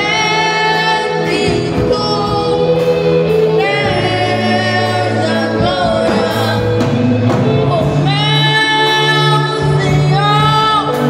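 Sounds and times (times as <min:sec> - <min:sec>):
boy singing lead: 0:00.0 - 0:11.0
drums: 0:00.0 - 0:11.0
keyboard bass: 0:00.0 - 0:11.0
man singing: 0:00.0 - 0:11.0
other singers: 0:00.0 - 0:11.0.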